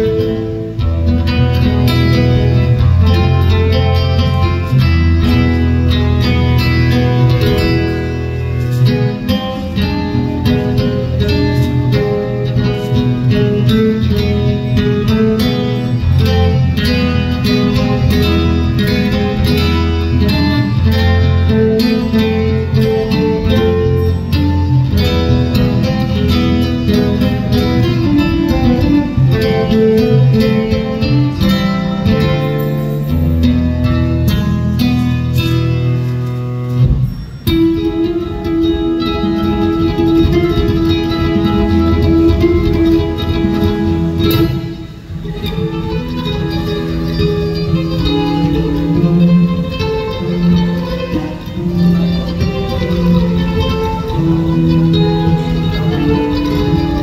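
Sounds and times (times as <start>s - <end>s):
flamenco classical guitar: 0.0s - 57.0s.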